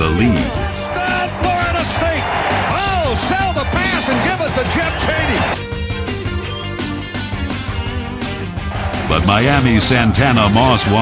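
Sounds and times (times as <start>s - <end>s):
stadium crowd cheering and yelling: 0.0s - 5.6s, 7.8s - 11.0s
backing music: 0.0s - 11.0s.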